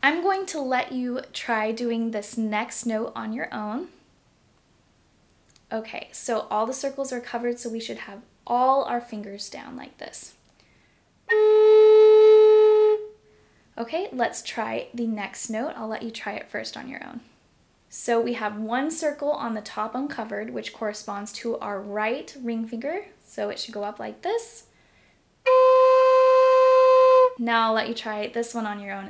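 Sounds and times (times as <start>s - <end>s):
flute playing held note: 11.3s - 13.2s, 25.5s - 27.4s.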